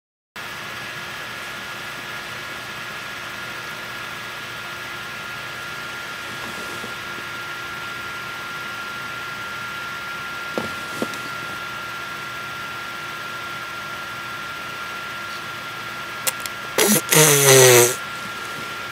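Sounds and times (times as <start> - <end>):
background hiss: 16.3 - 18.0.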